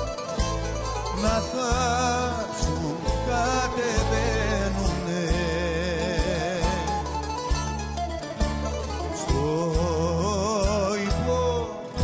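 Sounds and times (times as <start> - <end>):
bass: 0.0 - 12.0
live band playing: 0.0 - 12.0
plucked strings: 0.0 - 12.0
man singing with vibrato: 1.0 - 7.6, 9.0 - 12.0.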